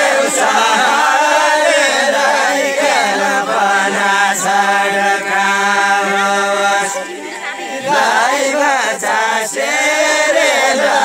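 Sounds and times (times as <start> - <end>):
group singing in unison: 0.0 - 11.0.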